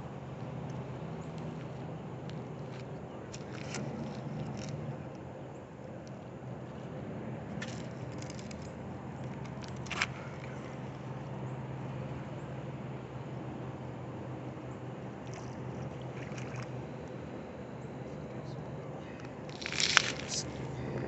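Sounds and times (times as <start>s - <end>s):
distant traffic hum: 0.0s - 21.0s.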